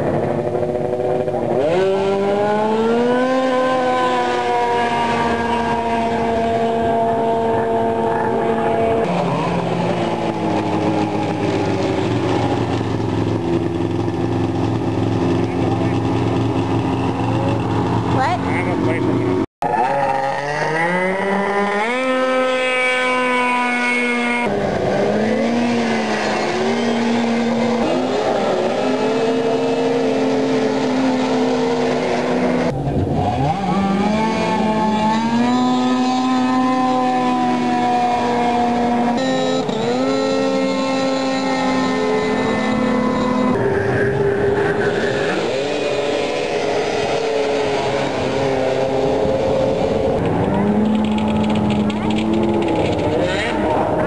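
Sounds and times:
snowmobile engines revving: 0.0s - 54.0s.

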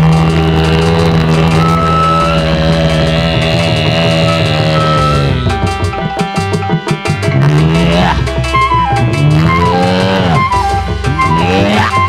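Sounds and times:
fast drum rhythm: 0.0s - 12.0s
sustained low note: 0.0s - 12.0s
wavering melody notes: 0.0s - 12.0s.

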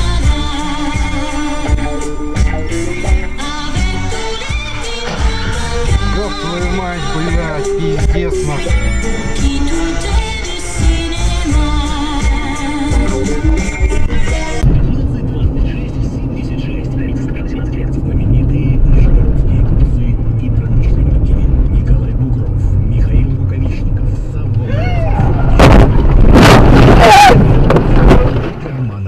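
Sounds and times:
car driving rumble inside cabin: 0.0s - 29.0s
person crying out: 24.6s - 25.4s, 27.0s - 27.4s
car collision impacts: 25.2s - 29.0s.

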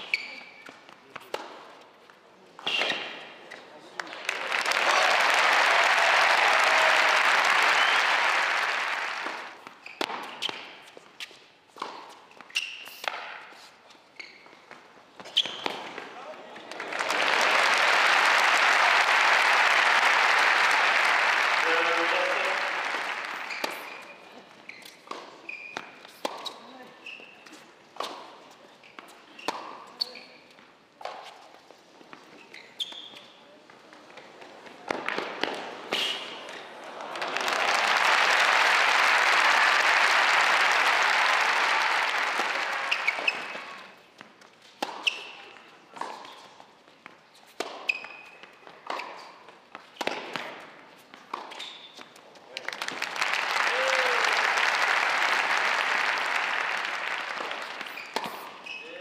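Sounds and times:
shoe squeaks on court: 0.0s - 0.8s, 9.8s - 11.3s, 12.3s - 15.9s, 23.4s - 27.6s, 28.8s - 30.6s, 32.2s - 33.4s, 42.9s - 43.8s, 44.9s - 46.6s, 47.3s - 49.3s, 51.4s - 52.1s, 57.8s - 59.0s
crowd applauding: 4.0s - 9.6s, 16.6s - 24.1s, 36.5s - 43.9s, 52.6s - 58.0s
racket striking tennis ball: 10.0s - 10.7s, 50.0s - 50.6s.

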